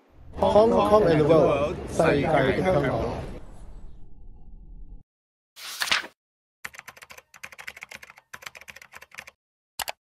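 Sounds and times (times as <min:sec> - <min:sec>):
keyboard typing: 0:06.6 - 0:10.0.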